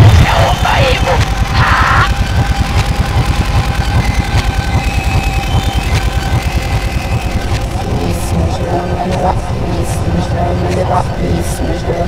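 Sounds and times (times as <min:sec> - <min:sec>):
helicopter rotor and engine: 0:00.0 - 0:12.0.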